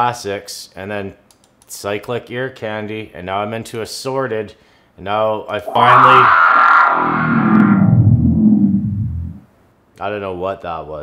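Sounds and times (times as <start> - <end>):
synthetic sound texture: 5.7 - 9.4.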